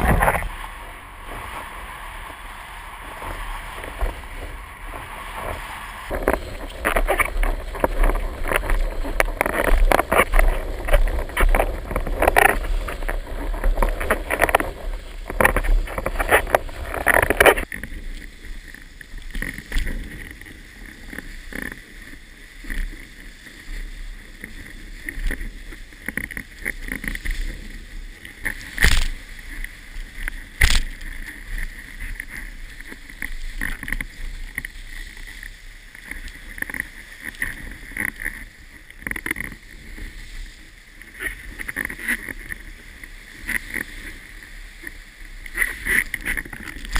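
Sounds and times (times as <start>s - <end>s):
wind buffeting microphone: 0.0s - 18.4s
water rushing and splashing: 0.0s - 46.9s.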